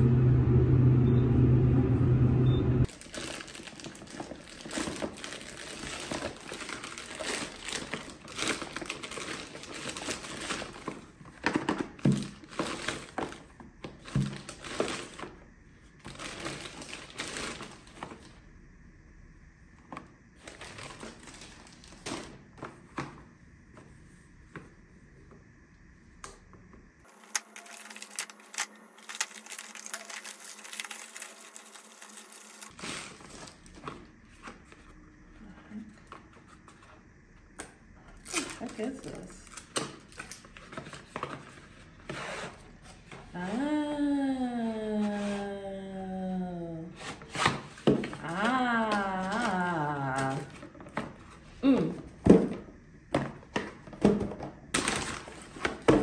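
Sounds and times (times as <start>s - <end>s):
plastic mailer crinkling: 2.8s - 15.4s, 16.0s - 18.3s, 20.4s - 22.4s, 27.0s - 34.0s, 54.7s - 56.0s.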